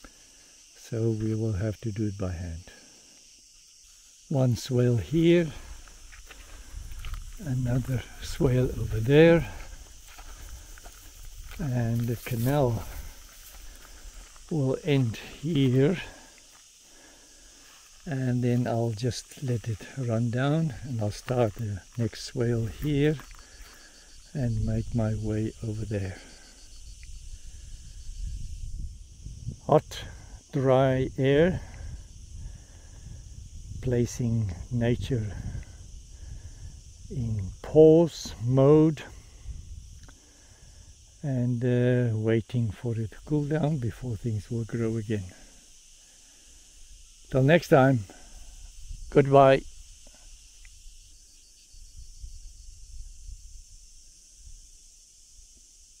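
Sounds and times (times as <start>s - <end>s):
insects chirping: 0.0s - 56.0s
person speaking: 4.3s - 5.7s, 7.4s - 9.8s, 11.6s - 13.2s, 14.4s - 16.4s, 18.0s - 23.2s
wind rumble on microphone: 5.0s - 16.0s, 24.2s - 41.2s, 48.2s - 51.2s, 51.8s - 54.8s.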